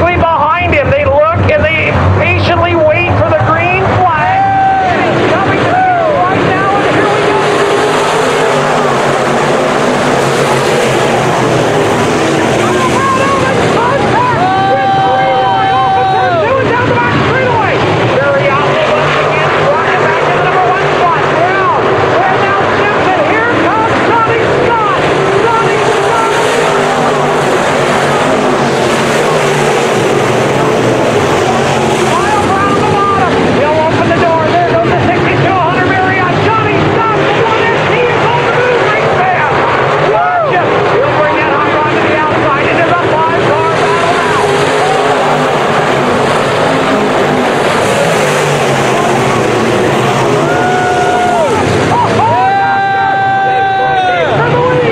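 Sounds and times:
race car engines roaring: 0:00.0 - 0:54.9.

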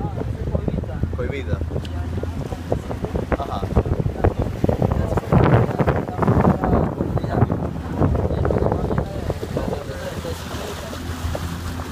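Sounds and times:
boat motor hum: 0:00.0 - 0:11.9
water rushing around hull: 0:00.0 - 0:11.9
wind buffeting microphone: 0:00.0 - 0:11.9.

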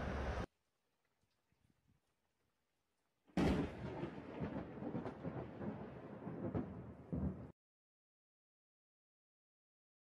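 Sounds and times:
thunder crack and rumble: 0:03.4 - 0:07.6.

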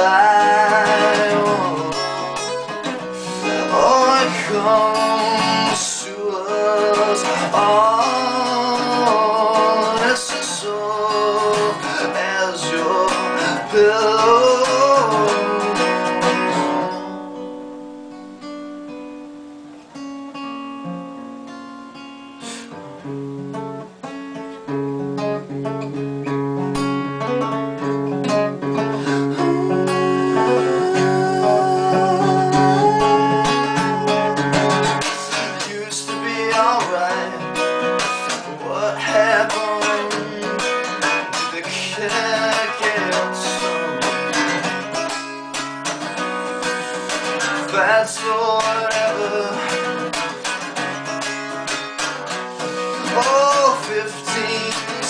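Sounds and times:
acoustic guitar playing: 0:00.0 - 0:55.0.

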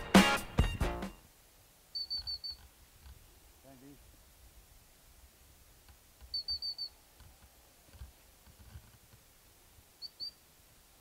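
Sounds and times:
bird chirping: 0:01.9 - 0:02.7, 0:06.2 - 0:07.0, 0:10.0 - 0:10.5.

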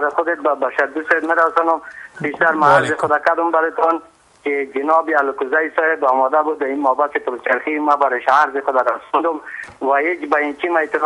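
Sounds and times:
man talking over telephone: 0:00.0 - 0:11.0.

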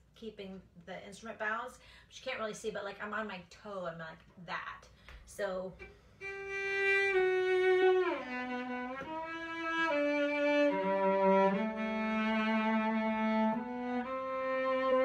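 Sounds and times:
bowed cello: 0:06.2 - 0:15.0.

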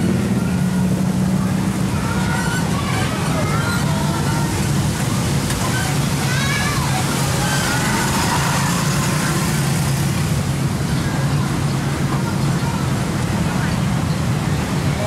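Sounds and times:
bus engine humming: 0:00.0 - 0:15.0
road noise: 0:00.0 - 0:15.0.

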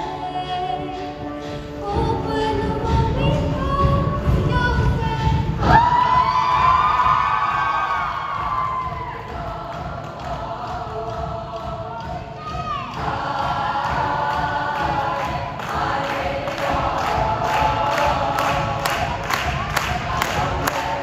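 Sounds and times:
choir singing in chords: 0:00.0 - 0:03.6, 0:05.2 - 0:21.0.

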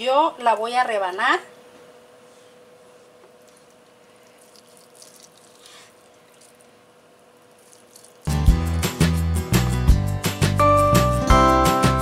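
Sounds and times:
loud background music: 0:08.3 - 0:12.0.

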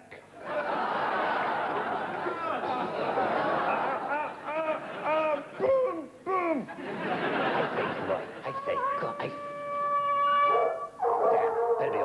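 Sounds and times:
person howling like a dog: 0:08.6 - 0:11.0.

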